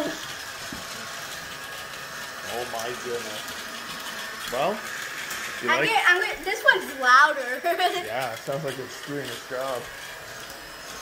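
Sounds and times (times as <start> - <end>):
toy vacuum cleaners whirring: 0.0 - 11.0.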